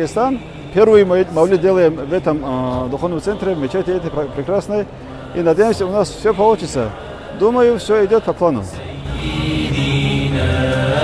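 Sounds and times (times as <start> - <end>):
man chanting in long held notes: 0.0 - 11.0.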